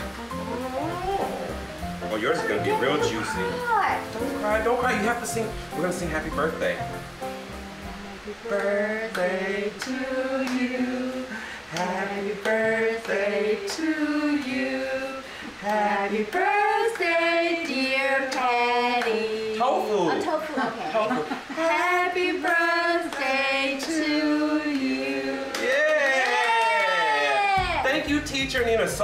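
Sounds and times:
backing music: 0.0s - 17.3s, 27.6s - 29.0s
person singing: 0.3s - 5.1s, 7.9s - 19.7s, 21.6s - 25.8s.

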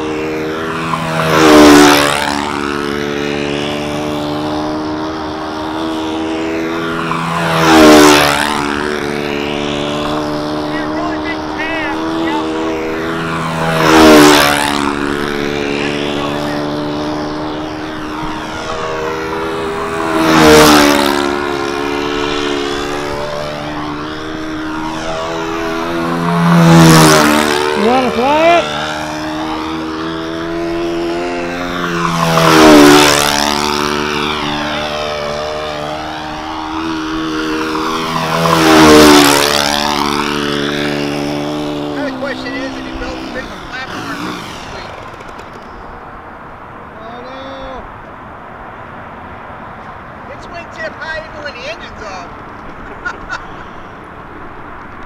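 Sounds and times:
model plane engine passing: 0.0s - 48.0s, 50.2s - 55.0s.

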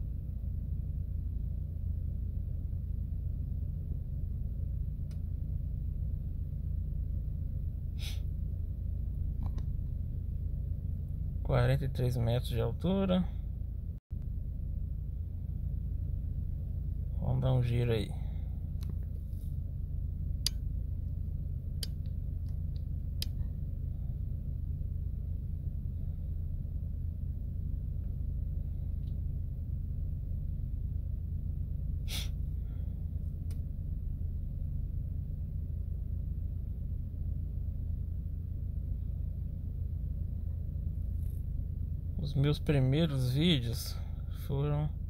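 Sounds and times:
steady low rumble: 0.0s - 45.0s.

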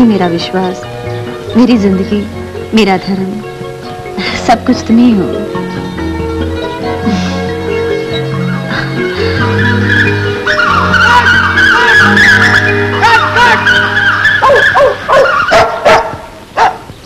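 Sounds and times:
film music with low held notes: 0.0s - 15.6s
dog barking: 11.0s - 16.9s.

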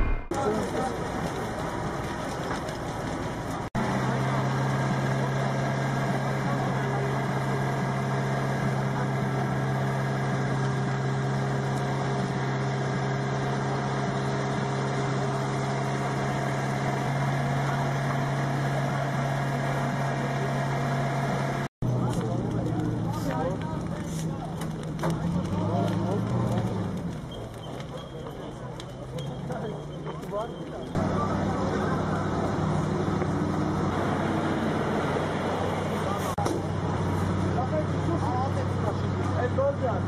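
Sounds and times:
fire truck engine running: 0.0s - 40.0s.

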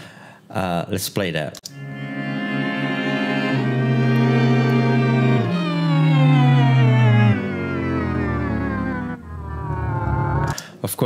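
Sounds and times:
pitch-shifted string chords gliding: 1.7s - 10.6s.

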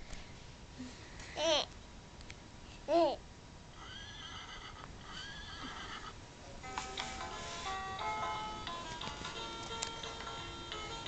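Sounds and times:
recorded horse whinny: 3.7s - 6.2s.

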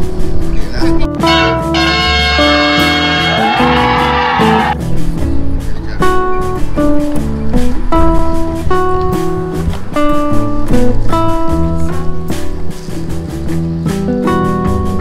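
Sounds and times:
plucked guitar notes: 0.0s - 15.0s.

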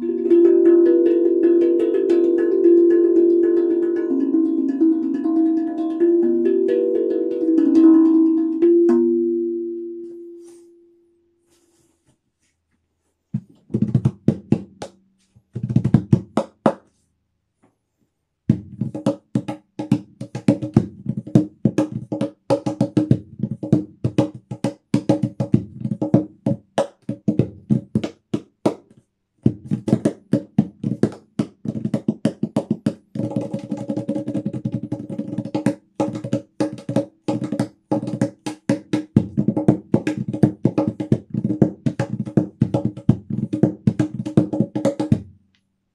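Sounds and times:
hands tapping steel tongue drum: 0.0s - 10.6s, 29.5s - 45.2s.

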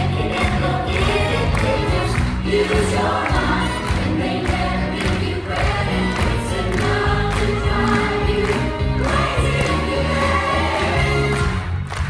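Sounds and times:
stage music with steady beat: 0.0s - 12.0s.

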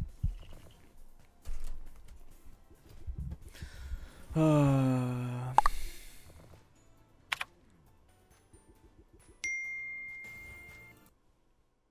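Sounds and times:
game sound: 0.0s - 11.2s
sharp clicks: 7.3s - 7.6s.

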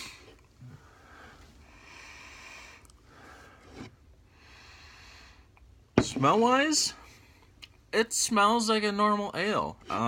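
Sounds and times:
man breathing through nose: 0.0s - 5.6s.

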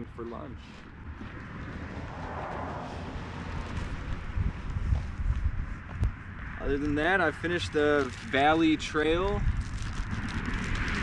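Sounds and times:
wind buffeting microphone: 1.0s - 11.0s.

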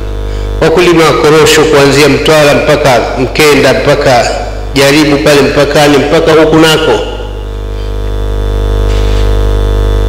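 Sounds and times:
electrical mains hum and buzz: 0.0s - 10.0s.

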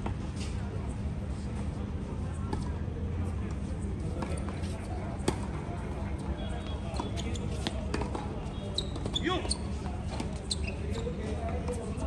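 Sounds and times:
tennis balls bouncing on court: 5.2s - 5.6s, 6.9s - 9.2s.

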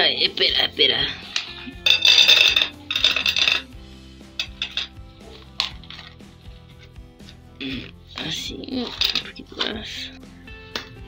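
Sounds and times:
kibble rattling into metal bowl: 1.3s - 3.8s, 4.4s - 6.2s, 8.7s - 9.8s.

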